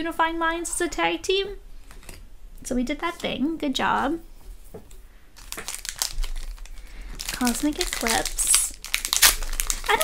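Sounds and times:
foil wrapper crinkling: 5.4s - 10.0s.

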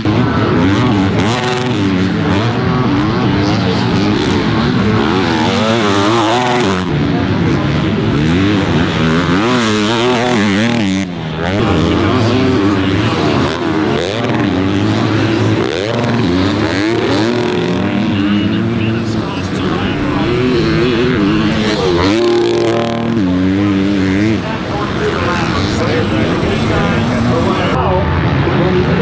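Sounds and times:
motocross bike engines revving: 0.0s - 29.0s.

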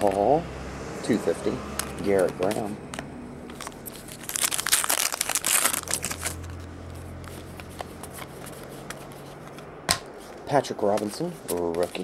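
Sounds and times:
foil wrapper tearing and crinkling: 3.5s - 6.7s.

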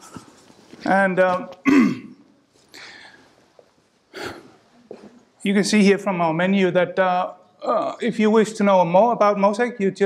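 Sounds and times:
man clearing his throat: 1.6s - 2.2s.

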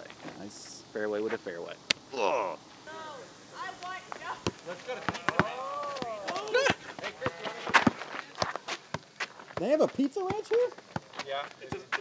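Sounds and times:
voices calling out: 2.0s - 9.0s
basketball thudding on asphalt: 4.3s - 6.3s, 7.1s - 12.0s.

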